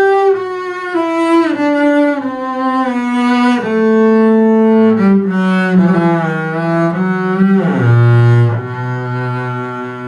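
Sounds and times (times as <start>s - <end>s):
bowed double bass: 0.0s - 10.0s.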